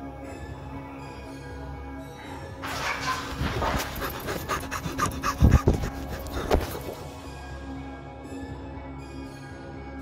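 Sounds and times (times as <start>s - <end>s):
rapid heavy panting: 3.6s - 7.1s.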